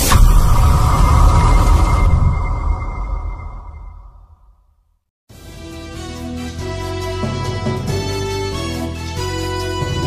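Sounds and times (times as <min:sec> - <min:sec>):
deep rumble: 0:00.0 - 0:04.8
sharp impact hit: 0:00.0 - 0:04.8
steady high ringing tone: 0:00.1 - 0:04.5.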